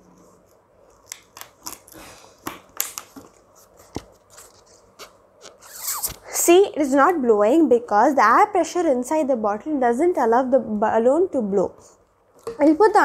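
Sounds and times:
breath blowing into balloon: 5.6s - 6.3s.

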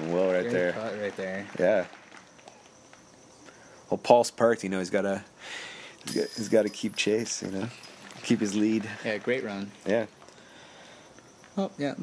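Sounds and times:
person speaking: 6.1s - 9.2s.

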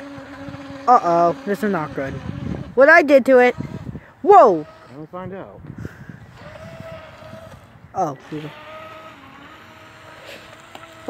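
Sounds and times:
small electric motor whining: 0.0s - 11.0s.

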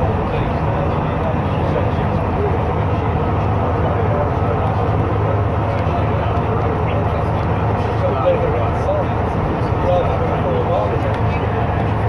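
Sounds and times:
bus diesel engine running: 0.0s - 12.0s
road noise: 0.0s - 12.0s.

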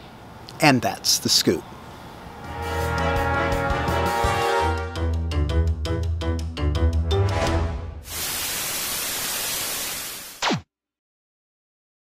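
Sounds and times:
white noise hiss: 8.1s - 10.4s.

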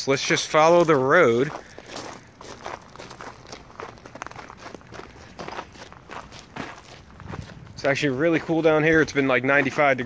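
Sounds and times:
footsteps on gravel: 0.1s - 10.0s.

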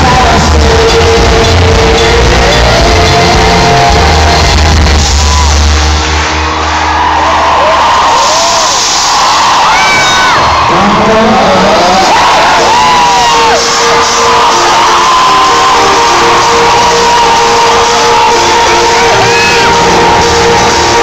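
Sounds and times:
heavy bass: 0.0s - 9.1s, 10.3s - 21.0s
audience cheering and screaming: 0.0s - 21.0s
live pop music: 0.0s - 21.0s.

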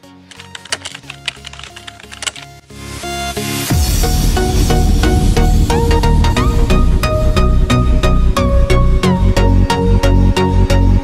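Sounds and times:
electronic background music: 0.0s - 11.0s
keyboard key clicks: 0.3s - 2.5s.

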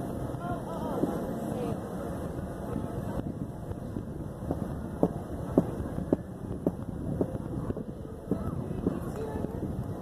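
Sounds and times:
faint distant voices: 0.0s - 10.0s
wind rumbling on microphone: 0.0s - 10.0s.

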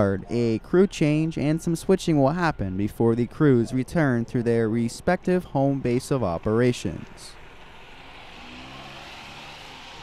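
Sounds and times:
distant diesel locomotive drone: 0.0s - 10.0s.

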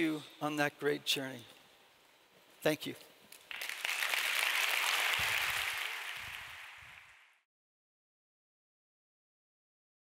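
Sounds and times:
audience applauding: 3.4s - 7.4s.

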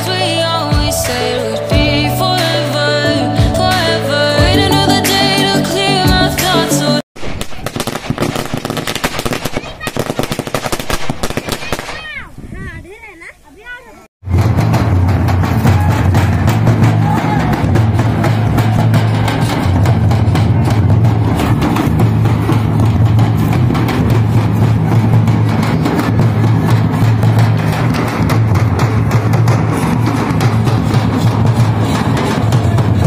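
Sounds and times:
barrel drums beaten with sticks: 0.0s - 2.4s, 14.2s - 33.0s
string of firecrackers going off: 7.2s - 12.2s, 14.3s - 33.0s.

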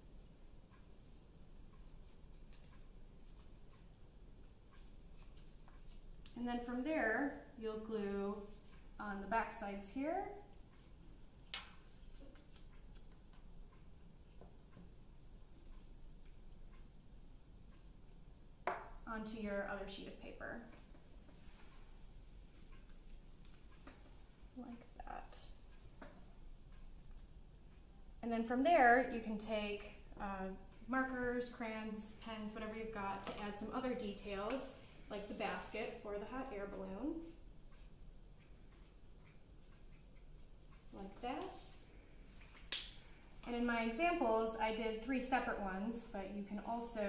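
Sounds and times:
woman speaking: 6.4s - 10.5s, 19.1s - 20.8s, 24.6s - 25.6s, 28.2s - 37.4s, 40.9s - 41.9s, 43.5s - 47.0s
soft ticks: 10.5s - 18.4s, 22.6s - 28.1s, 36.7s - 41.5s
paper and glue stick handling: 10.8s - 13.5s.

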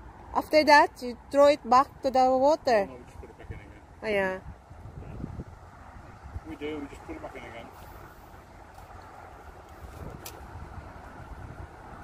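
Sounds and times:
wind buffeting microphone: 3.4s - 12.0s.

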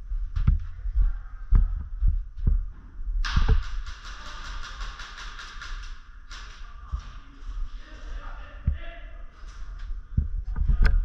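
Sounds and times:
rapid airsoft gunfire: 3.2s - 6.6s.

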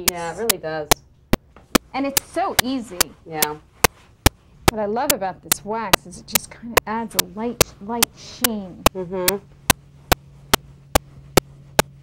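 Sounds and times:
sharp regular clicks: 0.0s - 11.9s
low steady hum: 0.0s - 12.0s.

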